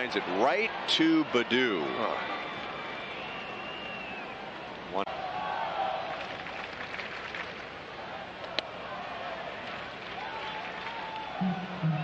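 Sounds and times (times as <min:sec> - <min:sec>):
crowd murmur from stands: 0:01.6 - 0:12.0.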